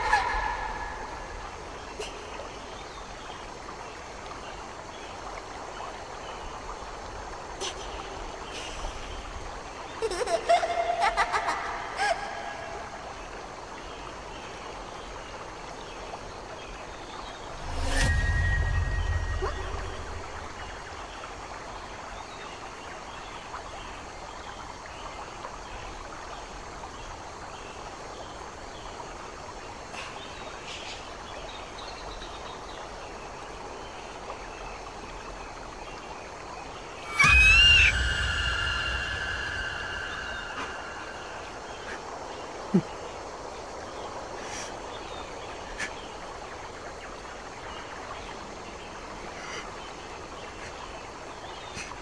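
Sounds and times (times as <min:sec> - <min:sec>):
faint outdoor background: 0:00.0 - 0:52.0
loud low boom with ringing: 0:17.5 - 0:21.0, 0:37.1 - 0:41.8.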